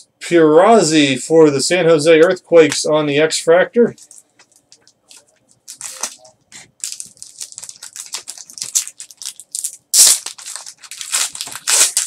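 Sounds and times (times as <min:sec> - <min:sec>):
foil wrapper crinkling and tearing: 0:04.0 - 0:12.0.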